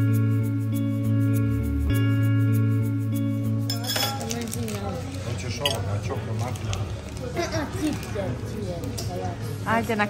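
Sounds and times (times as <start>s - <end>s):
background music with held tones: 0.0s - 4.5s
dishes and cutlery clinking: 3.6s - 6.2s.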